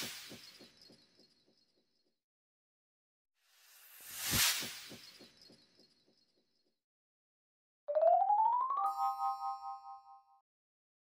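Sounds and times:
bright chime chord: 7.9s - 10.4s.

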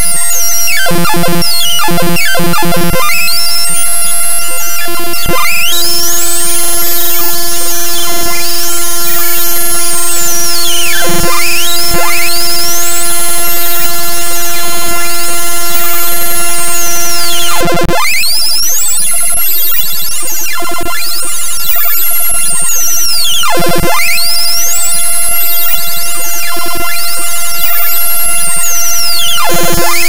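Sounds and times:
buzzy computer-generated tones sweeping: 0.0s - 30.0s
steady held tone: 0.0s - 30.0s.

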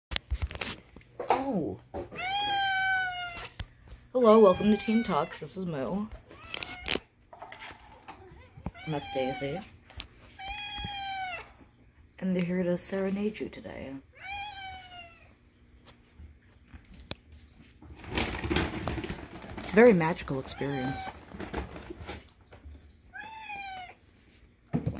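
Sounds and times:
cat meowing: 2.1s - 3.6s, 8.2s - 9.7s, 10.3s - 11.6s, 14.1s - 15.3s, 23.1s - 24.0s.

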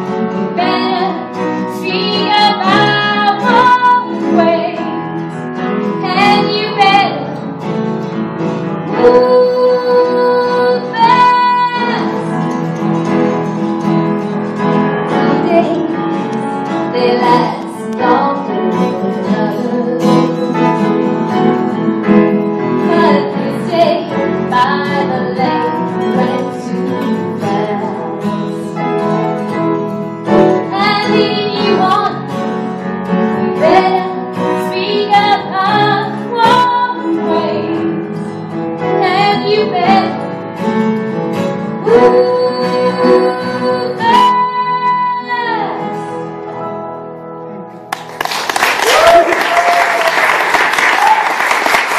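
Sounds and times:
guitar: 0.0s - 51.9s
woman singing into microphone: 0.5s - 5.0s, 6.0s - 7.4s, 8.9s - 12.4s, 15.2s - 16.0s, 16.9s - 21.0s, 22.8s - 28.8s, 30.6s - 32.4s, 33.6s - 38.2s, 39.0s - 40.3s, 41.8s - 46.3s.

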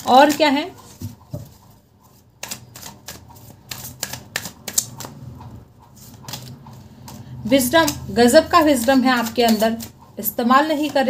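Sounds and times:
cards being shuffled: 2.4s - 10.0s.

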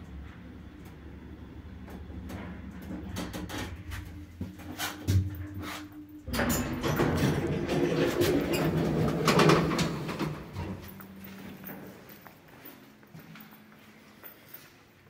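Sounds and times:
lift doors sliding open: 0.0s - 12.1s
lift humming: 0.0s - 14.6s.

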